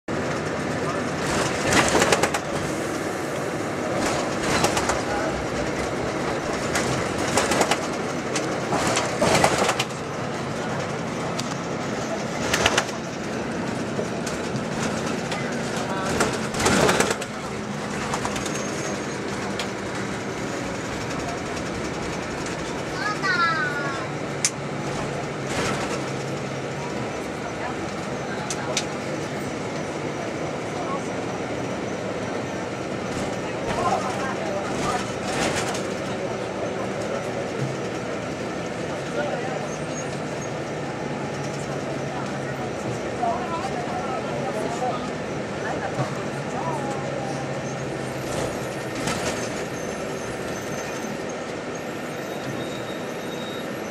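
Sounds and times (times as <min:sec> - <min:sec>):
bus engine and road rumble: 0:00.1 - 0:53.9
loud rattles and knocks: 0:01.1 - 0:02.6, 0:03.9 - 0:22.9
short chirping squeaks: 0:49.3 - 0:53.9.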